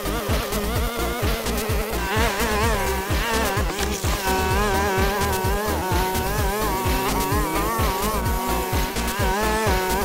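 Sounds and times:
brushcutter engine buzzing: 0.0s - 10.0s
electronic music with kick drum: 0.0s - 10.0s.

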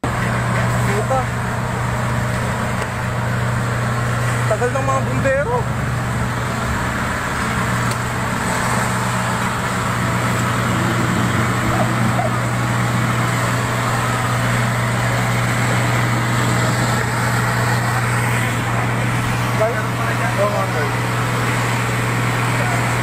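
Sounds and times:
vehicle engine running: 0.0s - 23.0s.

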